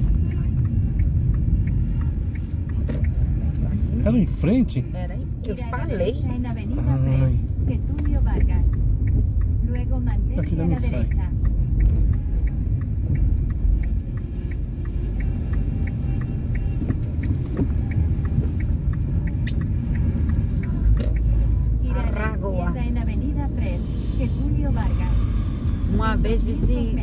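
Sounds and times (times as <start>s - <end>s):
voices: 0.0s - 16.8s, 17.6s - 27.0s
car engine and tyre rumble: 0.0s - 27.0s
light ticking: 0.0s - 27.0s.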